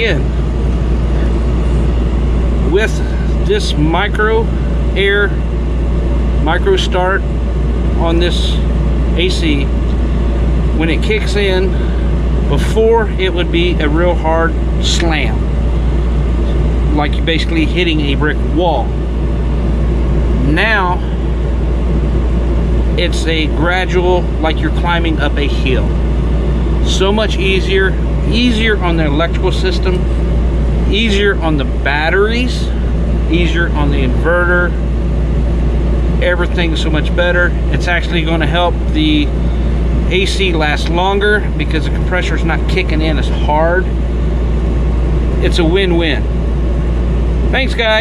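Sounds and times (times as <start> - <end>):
air conditioner humming: 0.0 - 48.0.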